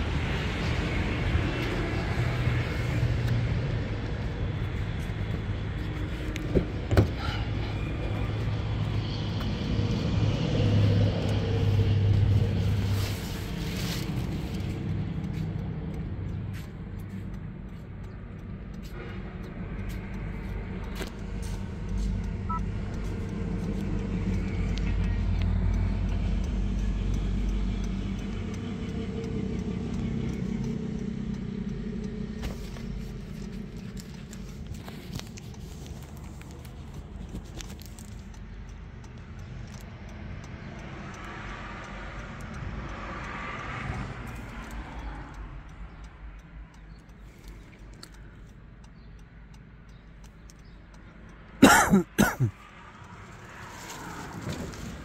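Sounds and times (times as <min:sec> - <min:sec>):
vehicle engine rumbling: 0:00.0 - 0:51.5, 0:52.6 - 0:55.0.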